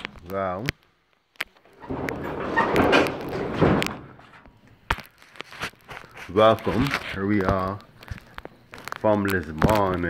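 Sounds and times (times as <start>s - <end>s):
rustling and knocking: 1.6s - 9.0s.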